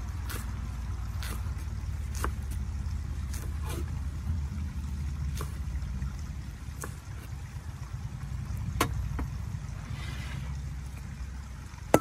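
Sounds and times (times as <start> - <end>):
knife chopping on wooden board: 2.1 - 2.6.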